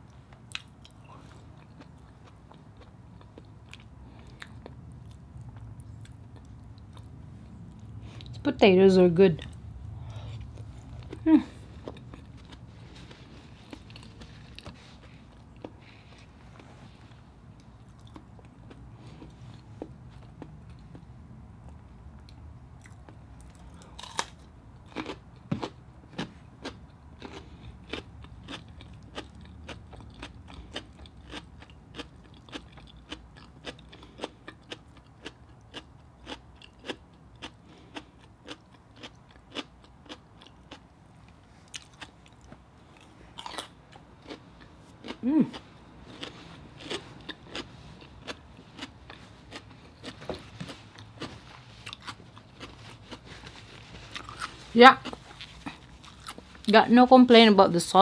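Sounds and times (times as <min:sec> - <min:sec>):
radish crunching while chewed: 0:09.4 - 0:21.0, 0:22.8 - 0:56.7.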